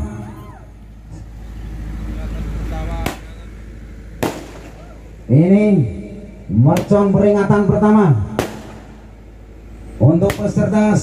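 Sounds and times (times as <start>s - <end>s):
low rumbling noise: 0.0s - 11.0s
firecracker bang: 3.0s - 3.4s, 4.2s - 5.0s, 8.3s - 9.1s.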